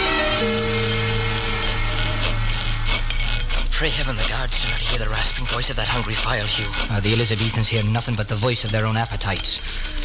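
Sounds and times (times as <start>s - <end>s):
music bridge: 0.0s - 4.4s
file rasping on metal chain: 0.0s - 10.0s.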